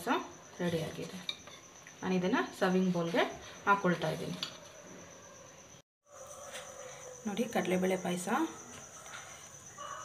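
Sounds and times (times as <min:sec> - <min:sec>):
rooster crowing: 0:06.0 - 0:07.3, 0:08.9 - 0:10.0.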